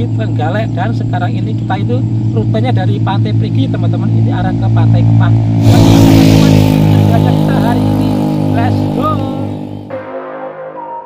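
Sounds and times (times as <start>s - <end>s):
vehicle engine running: 0.0s - 9.9s.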